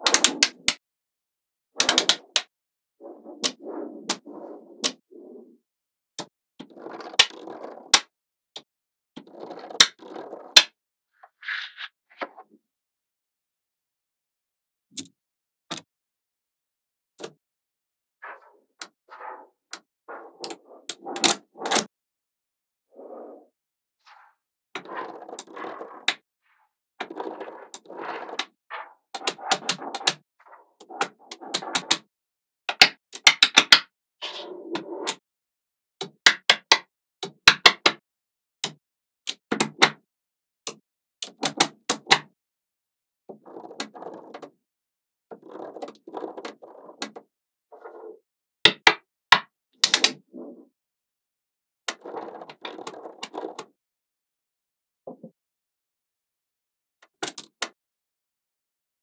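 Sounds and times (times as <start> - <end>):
balls rattling and rolling: 27.0 - 30.2.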